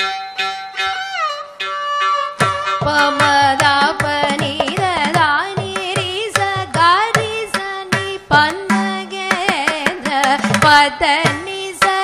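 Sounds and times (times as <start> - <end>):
violin accompaniment: 0.0 - 9.6
woman singing ornamented notes: 0.0 - 12.0.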